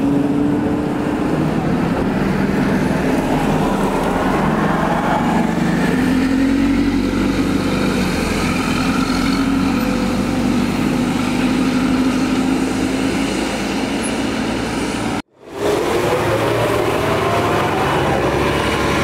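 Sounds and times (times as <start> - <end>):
bus engine drone: 0.0 - 19.0
traffic on wet road: 0.0 - 19.0.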